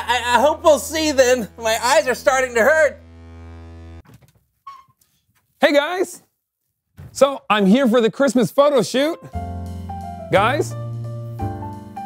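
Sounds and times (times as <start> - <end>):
electrical buzz: 0.0 - 4.1
door creak: 4.0 - 5.1.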